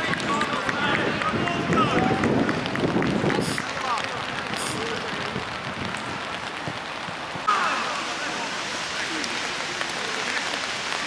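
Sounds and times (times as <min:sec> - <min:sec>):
steady hiss: 0:06.0 - 0:11.0.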